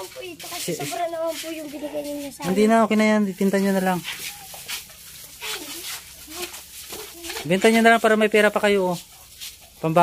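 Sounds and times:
distant young children's voices: 4.3 - 7.7.

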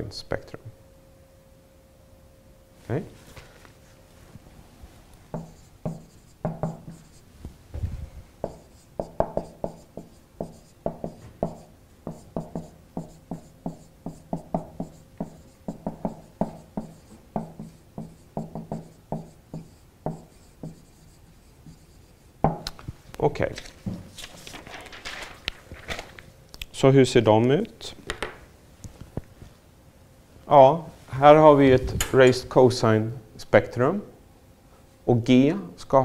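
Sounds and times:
marker pen squeaking on whiteboard: 5.3 - 7.3, 8.4 - 22.4.

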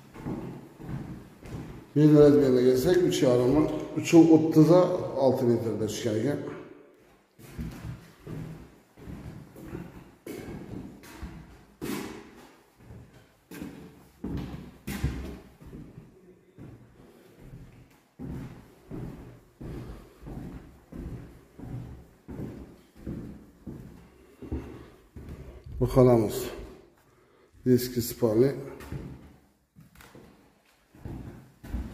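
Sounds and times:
footsteps on wooden floorboards: 0.0 - 4.0, 7.0 - 27.1, 28.7 - 31.9.

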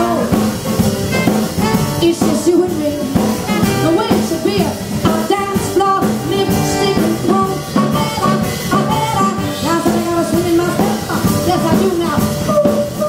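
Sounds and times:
trumpet and trombone: 0.0 - 2.1, 3.4 - 4.2
drums: 0.0 - 13.0
piano: 0.0 - 13.0
upright bass: 0.0 - 13.0.

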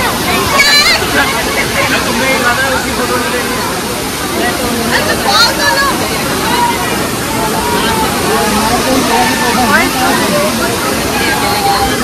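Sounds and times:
crowd chattering and shouting: 0.0 - 12.0
waterfall rushing into pool: 0.0 - 12.0.

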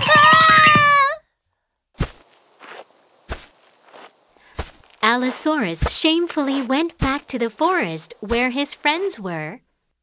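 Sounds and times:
cartoon footsteps: 0.0 - 1.2, 2.0 - 9.5
faint scuff: 2.0 - 7.2.

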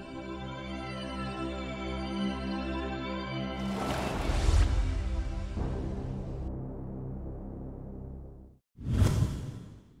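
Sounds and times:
background music: 0.0 - 8.6.

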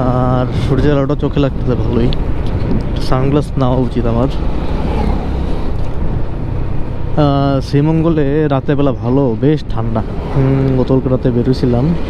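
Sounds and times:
wind rumble on microphone: 0.0 - 9.1
motorcycle engine cruising: 0.0 - 12.0.

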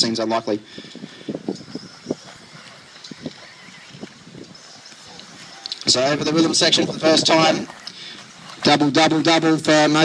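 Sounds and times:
high motor whine: 0.9 - 8.6.

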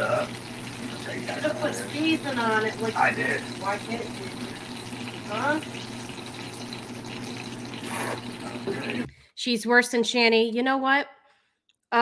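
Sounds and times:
burgers sizzling in a pan: 0.0 - 9.1.

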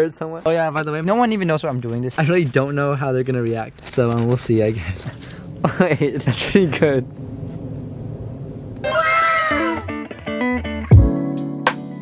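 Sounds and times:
faint background noise: 0.0 - 9.9
comedic downward sliding tone: 8.8 - 10.2.

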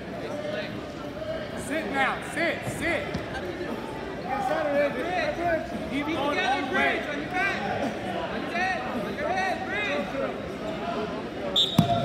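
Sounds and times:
crowd voices and shouting: 0.0 - 12.0.

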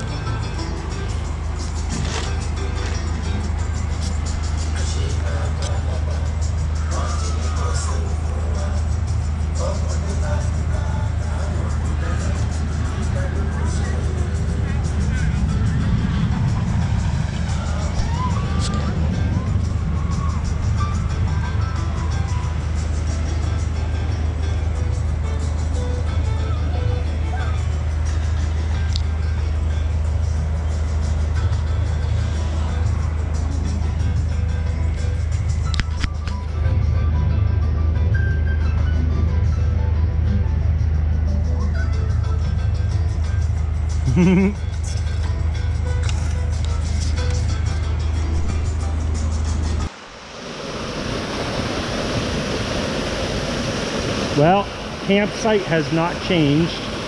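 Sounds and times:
faint voices: 0.0 - 35.3
background music: 0.0 - 50.2
steady low hum: 0.0 - 57.0.

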